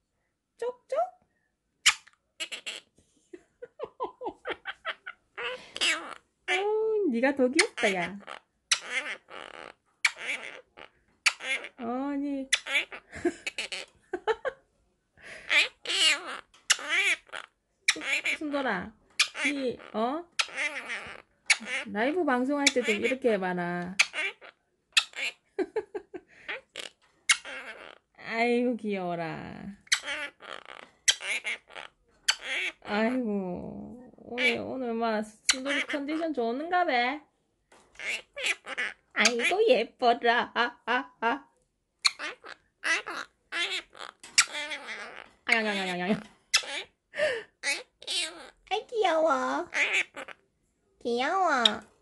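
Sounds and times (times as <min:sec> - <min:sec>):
parrot making raspy noises: 0:01.8 - 0:02.9, 0:04.4 - 0:06.7, 0:07.6 - 0:11.8, 0:12.5 - 0:13.9, 0:15.4 - 0:18.6, 0:19.2 - 0:21.9, 0:22.6 - 0:23.2, 0:24.0 - 0:25.4, 0:26.4 - 0:28.4, 0:29.8 - 0:33.2, 0:34.1 - 0:34.6, 0:35.5 - 0:36.2, 0:38.0 - 0:39.6, 0:42.0 - 0:50.4.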